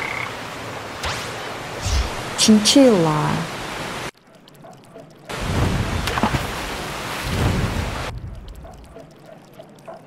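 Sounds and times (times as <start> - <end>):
tree frog croaking: 0.0 - 0.4.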